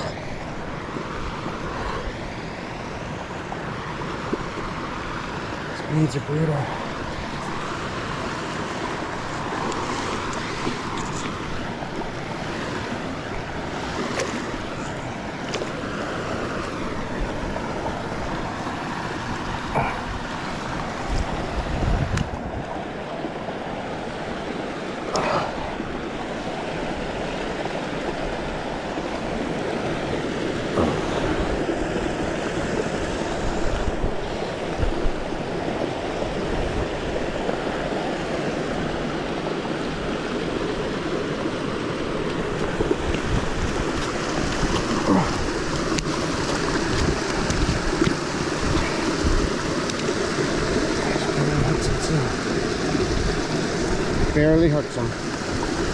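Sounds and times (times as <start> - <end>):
water rushing: 0.0 - 55.9
wind on microphone: 19.2 - 22.8, 28.1 - 39.2, 42.1 - 55.9.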